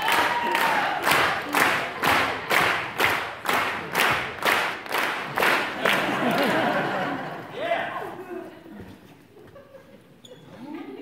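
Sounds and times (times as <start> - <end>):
audience clapping in rhythm: 0.0 - 7.4
crowd noise: 0.0 - 11.0.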